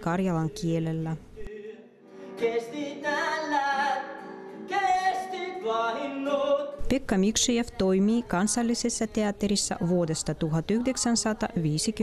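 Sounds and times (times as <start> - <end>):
acoustic guitar: 0.0 - 12.0
man singing: 1.4 - 6.8.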